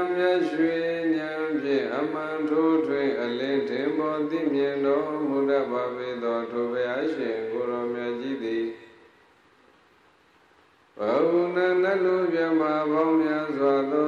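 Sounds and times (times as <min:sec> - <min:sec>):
man chanting into a microphone: 0:00.0 - 0:09.0, 0:11.0 - 0:14.0.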